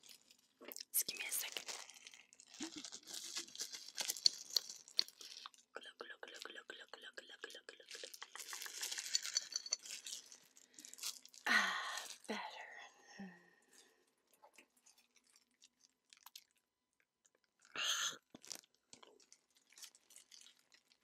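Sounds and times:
mouth clicks and crackles: 0.6s - 9.8s.

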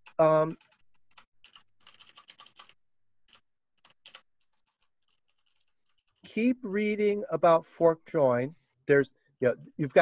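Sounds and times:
faint keyboard typing: 0.0s - 6.5s.

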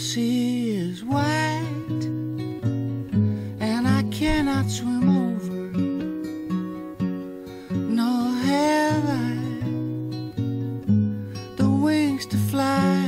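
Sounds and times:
person singing: 0.0s - 2.2s, 3.4s - 6.3s, 7.6s - 10.1s, 11.4s - 13.0s
acoustic guitar picked and strummed: 0.0s - 13.0s.

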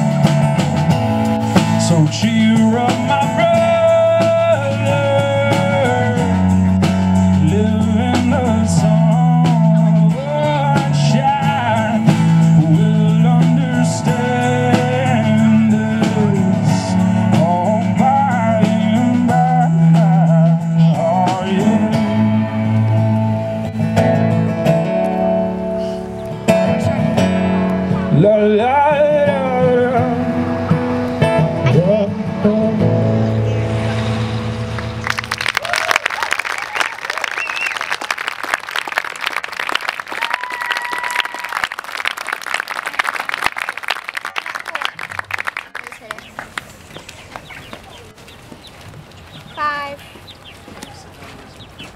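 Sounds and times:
acoustic guitar: 0.0s - 35.6s
audience applause and cheering: 33.8s - 47.6s.

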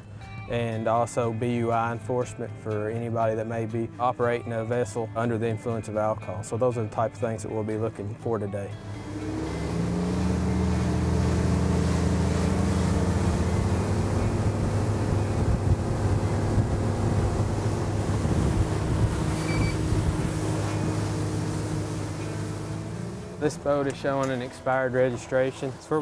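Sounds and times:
outboard motor running: 8.8s - 26.0s
water rushing against hull: 8.8s - 26.0s
wind on microphone: 13.5s - 21.8s.

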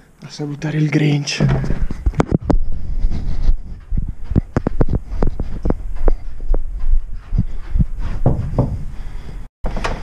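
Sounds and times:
footsteps on carpet: 1.6s - 8.9s.

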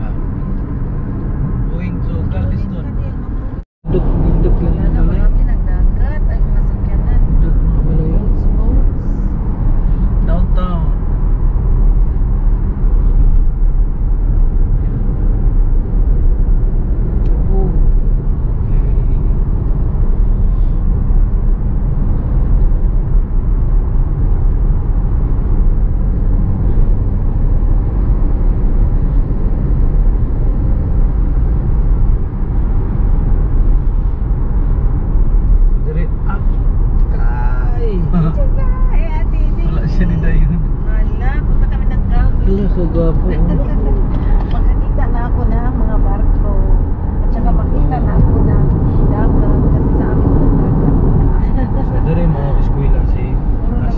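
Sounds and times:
car road and tyre noise: 0.0s - 53.9s
person speaking: 37.1s - 46.6s.

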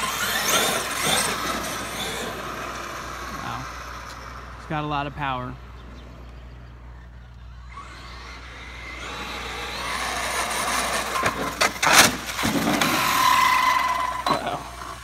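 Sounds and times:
steady high whine: 0.0s - 15.0s
toy truck tyre and motor noise: 0.0s - 15.0s.

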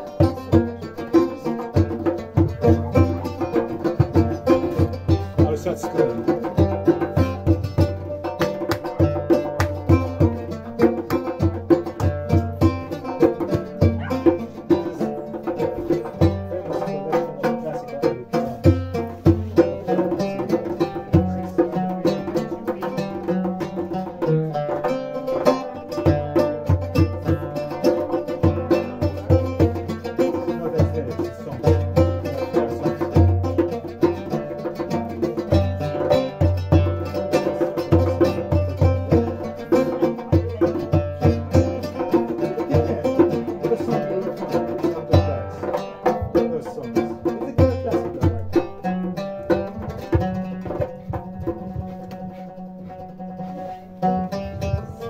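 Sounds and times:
hand drum strokes: 0.0s - 55.0s
oud plucked melody: 0.0s - 55.0s.

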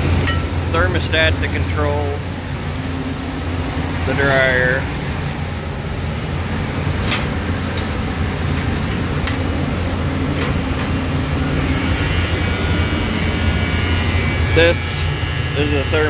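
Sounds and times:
grain dryer fan drone: 0.0s - 16.0s.

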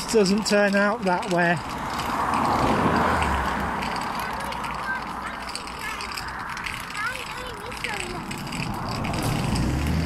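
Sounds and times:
distant traffic: 0.0s - 10.0s.

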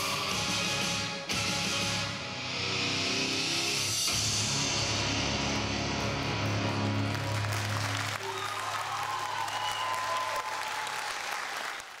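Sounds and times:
audience applause: 6.7s - 12.0s.

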